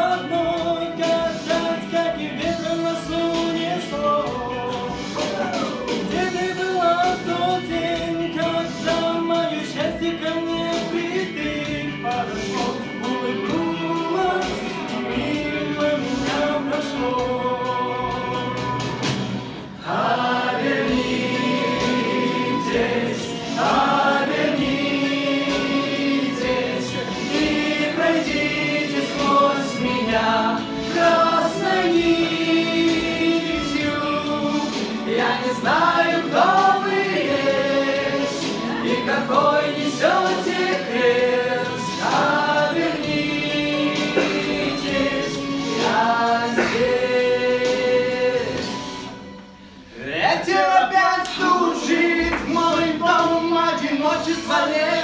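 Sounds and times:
two men singing together: 0.0s - 18.8s, 19.8s - 49.2s, 50.2s - 55.0s.

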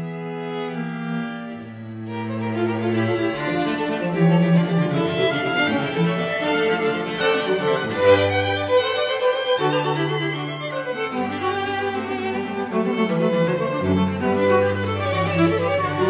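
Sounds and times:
cello notes: 0.0s - 16.0s
violin: 0.0s - 16.0s.

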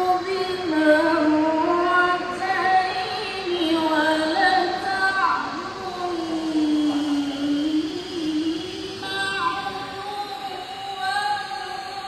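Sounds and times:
woman reciting melodically: 0.0s - 12.0s.

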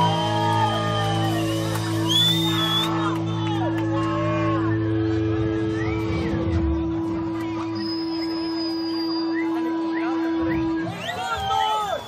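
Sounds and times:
audience whistling: 0.0s - 3.0s, 5.6s - 6.5s, 7.8s - 12.0s
crowd noise: 0.0s - 12.0s
electric guitar feedback tone: 0.0s - 12.0s.

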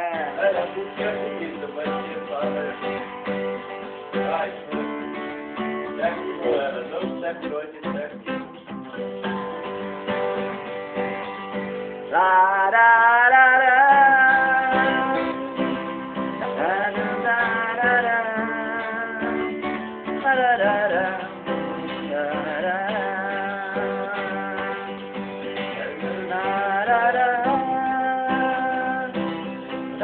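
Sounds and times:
man singing long notes: 0.0s - 3.0s, 12.1s - 30.0s
acoustic guitar strumming: 0.0s - 30.0s.

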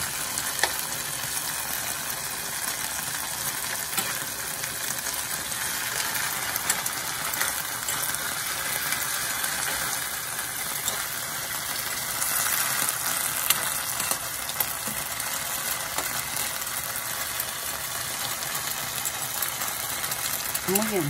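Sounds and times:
food sizzling in a frying pan: 0.0s - 21.0s
metal spoon scraping a pan: 3.9s - 4.4s.

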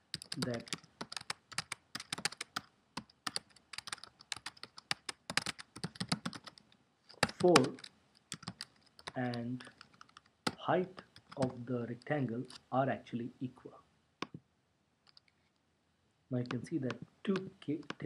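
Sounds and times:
typing on computer keyboard: 0.0s - 10.6s, 11.2s - 11.5s, 15.1s - 15.3s.

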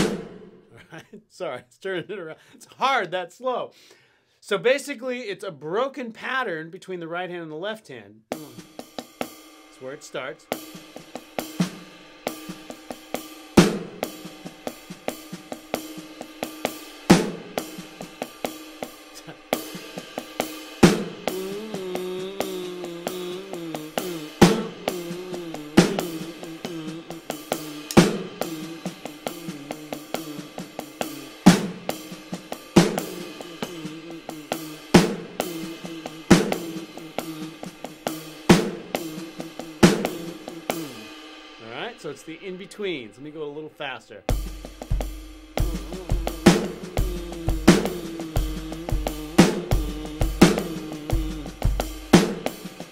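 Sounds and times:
electronic drum funk groove: 0.0s - 0.6s, 8.3s - 9.4s, 10.5s - 41.1s, 44.3s - 52.9s
loud drum accent hits: 0.0s - 0.7s, 32.8s - 41.0s
hi-hat strokes: 8.3s - 43.2s, 44.3s - 52.9s.

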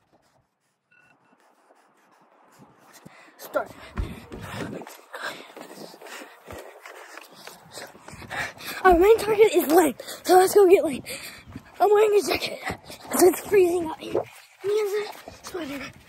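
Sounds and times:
breathing: 2.9s - 8.9s, 10.0s - 10.3s, 11.0s - 11.8s
low thumps: 3.9s - 4.9s.

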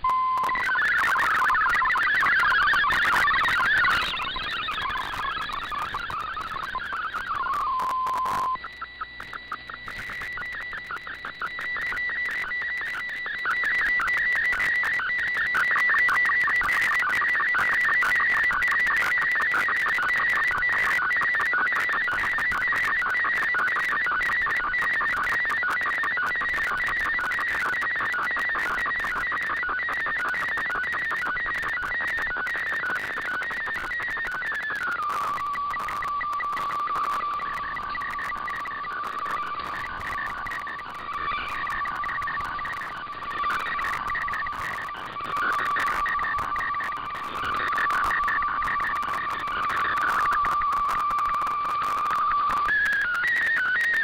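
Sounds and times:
fluttering high whistling tone: 0.0s - 54.0s
radio static: 0.0s - 54.0s.

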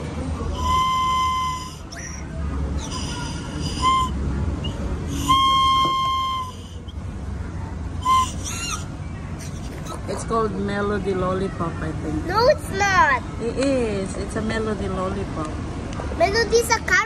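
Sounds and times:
candy whistle toots: 0.6s - 7.0s, 8.0s - 9.6s.

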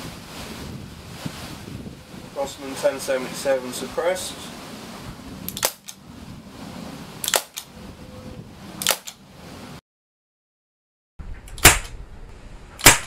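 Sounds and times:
loud air rifle crack: 11.5s - 12.0s, 12.8s - 13.0s.

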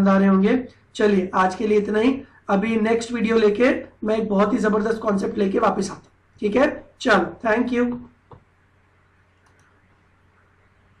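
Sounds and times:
faint clicks: 9.4s - 9.8s.

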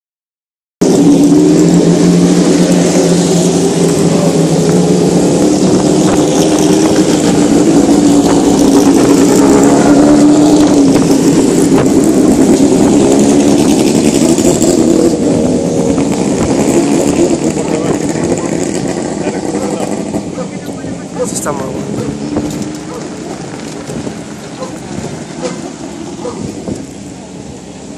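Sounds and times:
racing car engines passing: 0.8s - 27.9s.

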